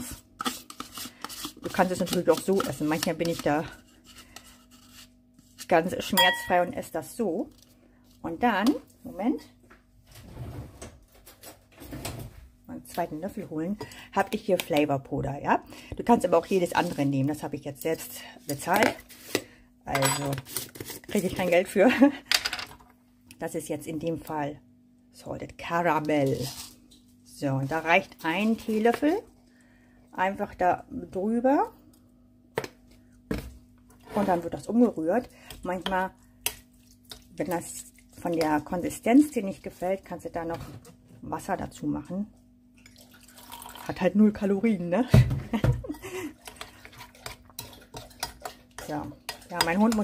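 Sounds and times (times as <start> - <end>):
metal teaspoon knocking kitchenware: 6.2 - 6.7
drawer sliding open: 10.1 - 11.0.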